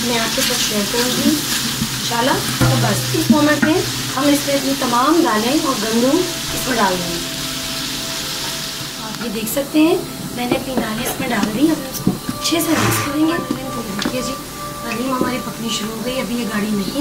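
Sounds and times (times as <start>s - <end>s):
oil sizzling in a pot: 0.0s - 17.0s
person talking: 11.2s - 14.2s.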